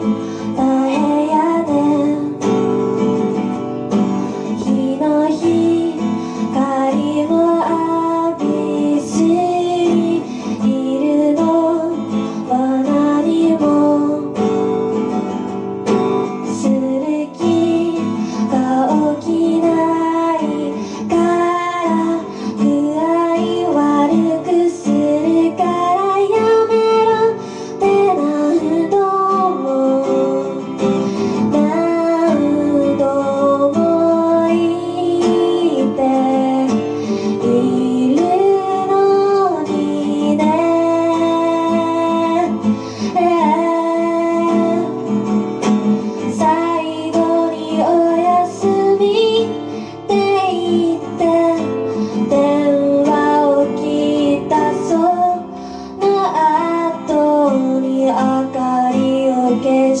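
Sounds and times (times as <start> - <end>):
guitar accompaniment: 0.0 - 60.0
woman singing: 0.0 - 60.0.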